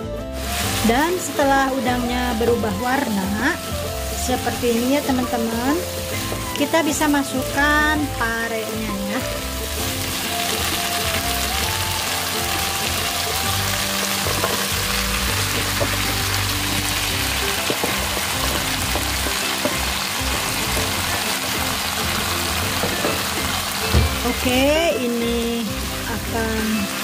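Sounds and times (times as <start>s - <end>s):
quiet background music: 0.0s - 27.0s
paste sizzling in hot oil: 0.3s - 27.0s.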